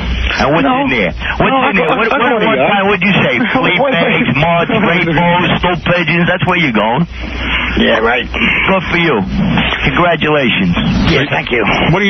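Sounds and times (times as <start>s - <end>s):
men talking over one another: 0.2s - 12.0s.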